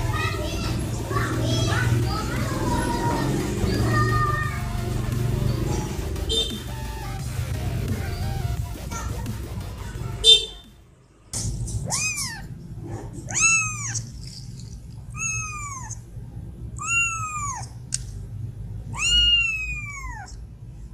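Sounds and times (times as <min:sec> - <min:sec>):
sharp high squeak: 0:11.8 - 0:12.5, 0:15.2 - 0:16.0
kitten mewing: 0:11.8 - 0:12.6, 0:13.2 - 0:14.2, 0:15.1 - 0:16.1, 0:16.8 - 0:17.8, 0:18.8 - 0:20.4.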